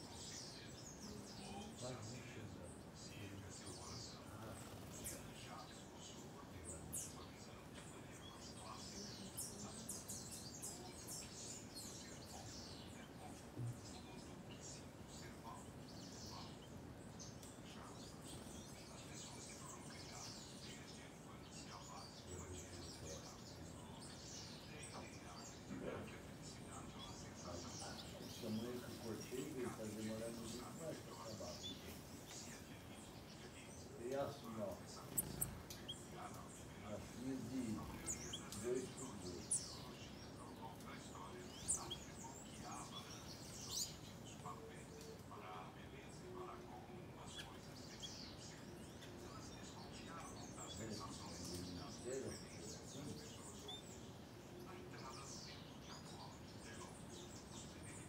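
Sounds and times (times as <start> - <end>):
low voice: 0.0 - 16.7, 17.5 - 58.0
faint background hiss: 0.0 - 58.0
small birds chirping: 0.0 - 58.0
high-pitched bird chirps: 35.1 - 36.1.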